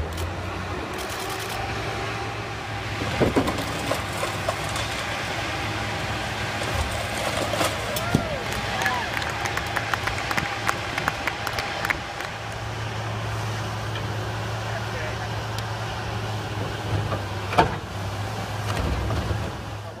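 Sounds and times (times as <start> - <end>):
diesel engine hum: 0.0 - 20.0.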